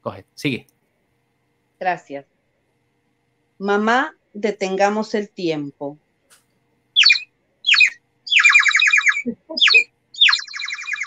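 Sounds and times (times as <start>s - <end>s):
bird whistle chirps and trill: 7.0s - 11.0s.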